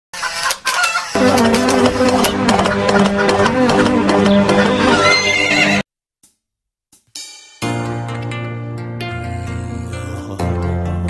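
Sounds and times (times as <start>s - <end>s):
loud intro music: 1.2s - 5.8s.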